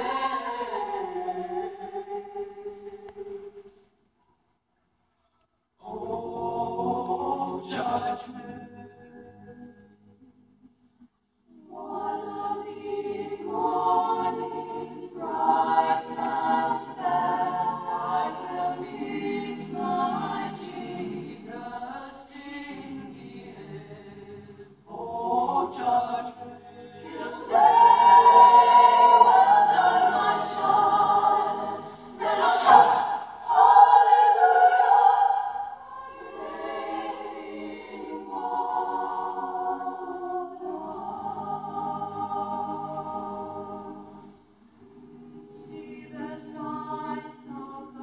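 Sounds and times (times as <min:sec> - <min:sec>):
mixed choir singing: 0:00.0 - 0:03.8, 0:05.8 - 0:10.0, 0:11.6 - 0:48.0.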